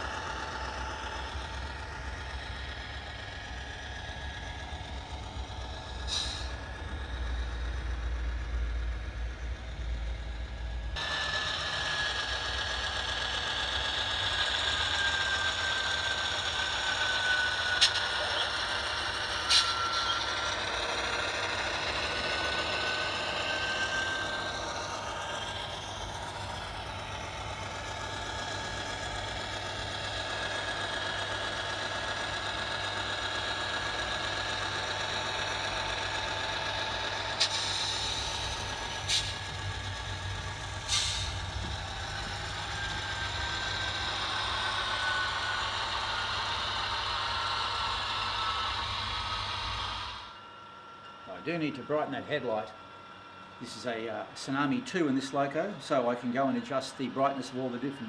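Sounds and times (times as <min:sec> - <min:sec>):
diesel engine through small speaker: 0:00.0 - 0:50.5, 0:51.2 - 0:58.0.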